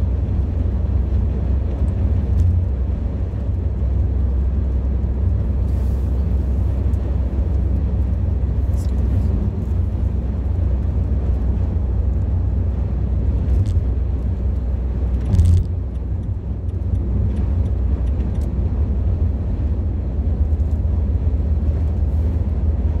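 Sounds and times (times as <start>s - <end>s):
car tyres and engine rumble: 0.0s - 23.0s.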